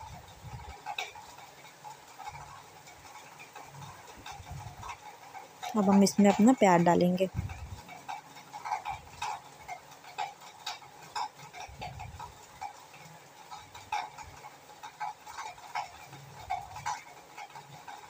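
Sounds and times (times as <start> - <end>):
metal spatula stirring in pan: 0.0 - 18.0
oil crackling and popping: 0.0 - 18.0.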